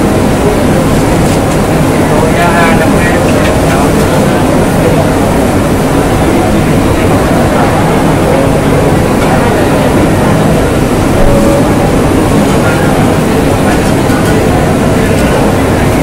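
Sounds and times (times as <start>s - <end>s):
gas wok burners roaring: 0.0s - 16.0s
people talking: 0.0s - 16.0s.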